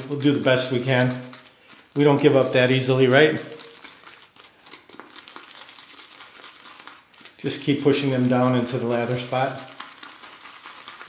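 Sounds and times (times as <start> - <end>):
shaving brush squishing lather: 0.0 - 11.0.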